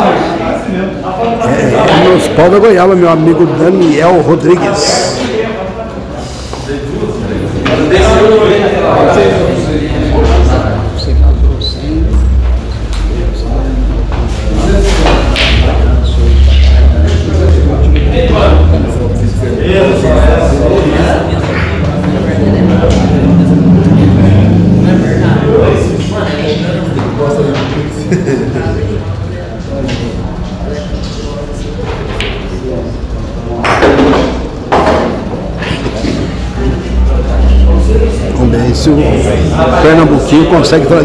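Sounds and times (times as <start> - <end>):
background voices: 4.7 - 40.5
steady low hum: 6.0 - 33.6
cue striking ball: 14.9 - 15.8, 32.0 - 32.6, 33.6 - 35.4
pool balls knocking together: 33.6 - 35.4.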